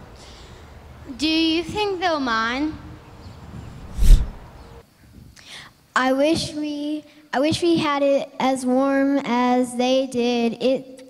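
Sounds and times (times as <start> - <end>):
breath puff into microphone: 3.7 - 4.4.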